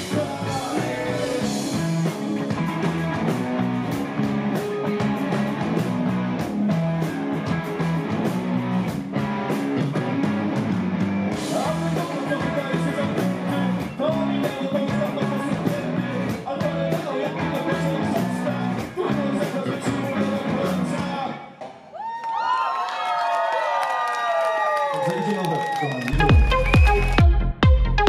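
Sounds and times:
bass guitar: 0.0 - 21.4, 26.1 - 28.0
electric guitar: 0.0 - 21.5
drum kit beat: 0.0 - 21.8, 26.2 - 28.0.

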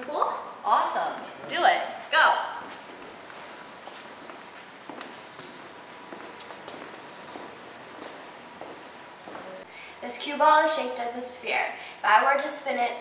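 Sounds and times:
steady background hiss: 0.0 - 13.0
footsteps on hard floor: 2.6 - 9.6.

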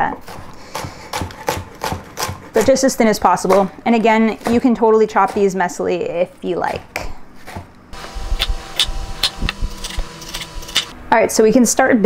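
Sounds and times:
low hum: 8.0 - 11.2
knife slicing on wooden board: 8.4 - 10.9.

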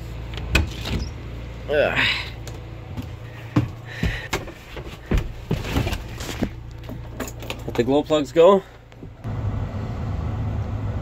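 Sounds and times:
steady low hum: 0.0 - 9.6
knocks and clunks in tractor cab: 2.4 - 8.2.

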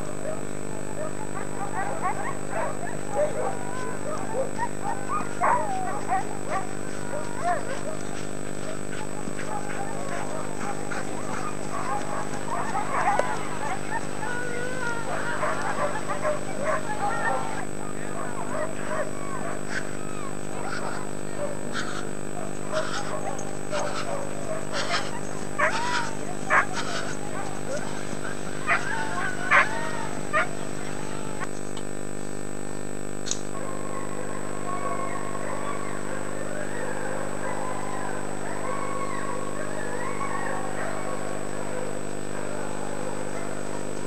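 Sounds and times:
dogs barking and yelping: 0.0 - 31.5, 33.5 - 44.0
camcorder mechanical hum: 0.0 - 44.0.

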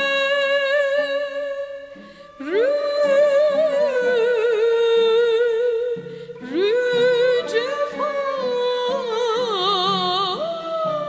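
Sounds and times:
instrumental accompaniment: 0.0 - 11.0
woman singing with vibrato: 0.0 - 11.0.

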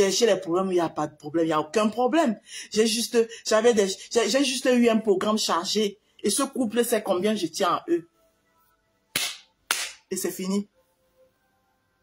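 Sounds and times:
sharp hand claps: 9.1 - 10.1.

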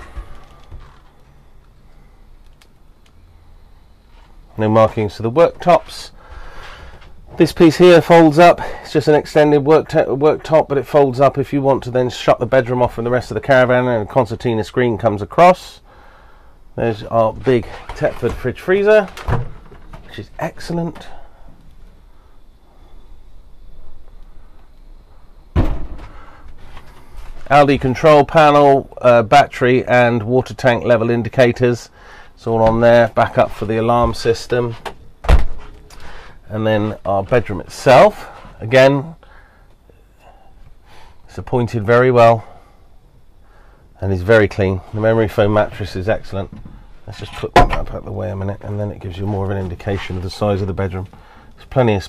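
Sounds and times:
faint clicks: 2.4 - 3.2
fridge door thud: 25.6 - 26.2, 35.2 - 35.7, 47.6 - 48.0.

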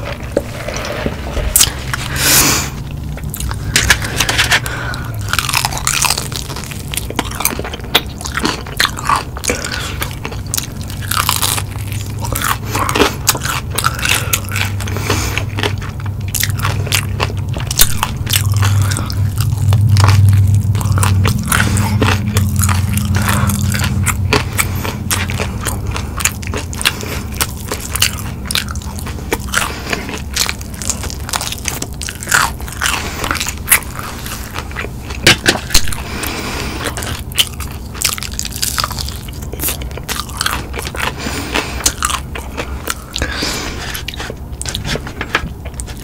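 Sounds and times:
crunchy chewing: 0.0 - 46.0
low hum: 0.0 - 46.0.

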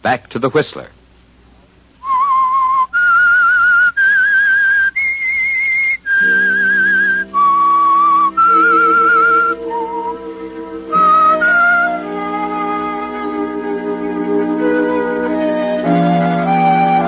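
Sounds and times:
person whistling slow tune: 2.0 - 17.0
low orchestral chord: 6.2 - 17.0.

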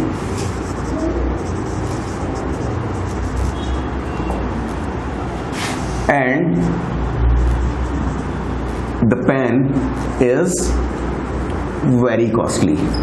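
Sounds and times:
marker writing on whiteboard: 0.0 - 6.1, 7.4 - 9.1
low rumbling background noise: 0.0 - 13.0.

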